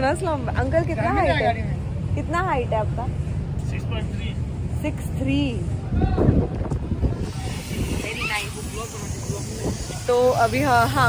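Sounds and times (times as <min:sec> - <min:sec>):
wind buffeting microphone: 0:05.3 - 0:11.0
woman's voice: 0:10.1 - 0:11.0.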